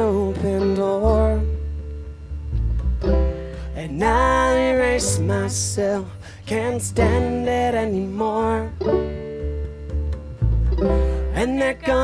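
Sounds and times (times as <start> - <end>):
acoustic guitar: 0.0 - 12.0
upright bass: 0.0 - 12.0
banjo: 6.9 - 12.0
woman singing: 11.4 - 12.0.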